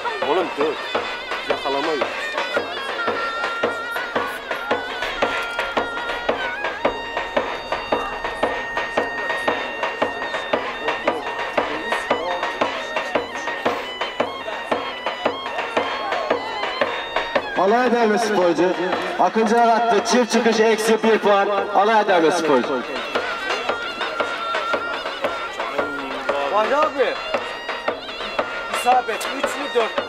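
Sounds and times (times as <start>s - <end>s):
shrill double-reed pipe: 0.0s - 30.0s
bass drum beat: 0.1s - 30.0s.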